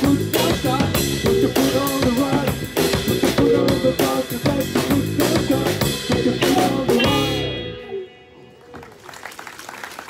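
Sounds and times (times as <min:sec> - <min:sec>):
audience clapping: 0:08.6 - 0:10.0.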